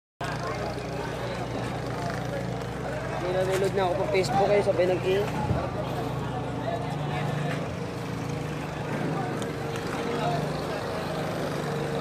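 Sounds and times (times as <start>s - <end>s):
people talking: 0.2s - 12.0s.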